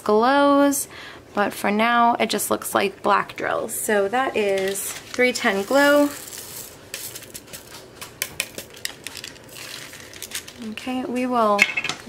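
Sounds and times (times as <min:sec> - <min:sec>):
resin beads clicking in plastic bag: 0:04.6 - 0:10.8.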